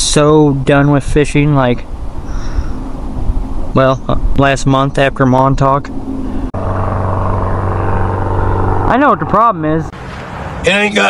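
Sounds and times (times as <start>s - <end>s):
airplane engine droning: 1.8s - 11.0s.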